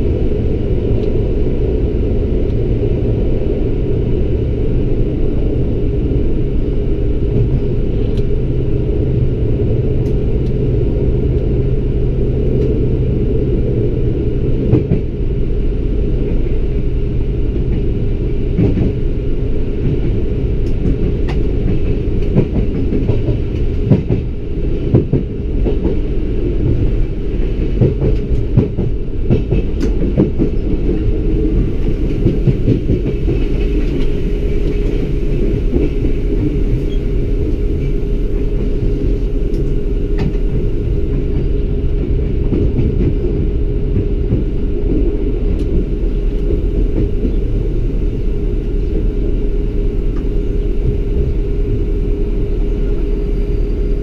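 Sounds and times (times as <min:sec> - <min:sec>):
railcar engine drone: 0:00.0 - 0:54.0.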